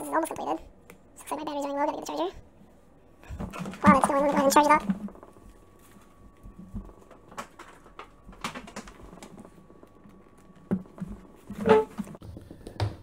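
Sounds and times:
faint high hum: 0.0 - 13.0
handling clicks and knocks: 6.2 - 12.2.

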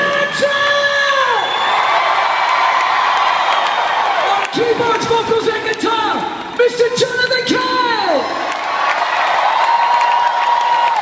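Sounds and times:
audience cheering: 0.0 - 6.2, 7.8 - 11.0.

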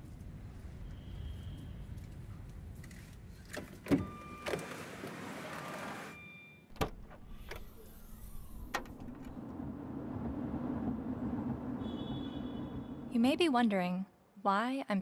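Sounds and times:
low hum of car driving: 7.8 - 13.1.

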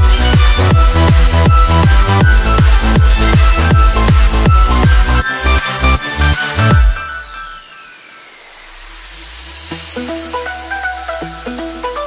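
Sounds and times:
electronic music: 0.0 - 12.0
low hum: 5.8 - 12.0.

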